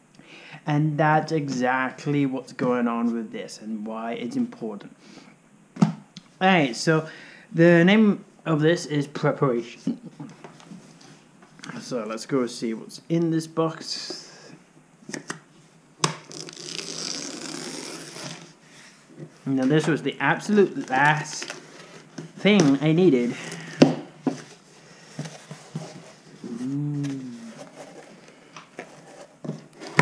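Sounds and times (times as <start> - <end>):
packing tape peeling off cardboard: 16.2 - 18.5.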